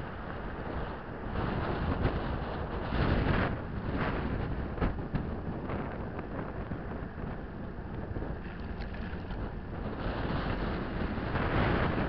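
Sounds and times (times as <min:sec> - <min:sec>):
vehicle road and wind noise: 0:00.0 - 0:12.0
wind buffeting microphone: 0:00.0 - 0:12.0.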